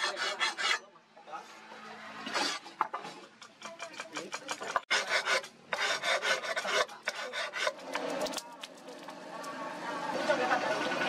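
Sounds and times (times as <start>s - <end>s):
file scraping steel blade: 0.0s - 0.9s, 2.2s - 2.9s, 3.6s - 8.2s.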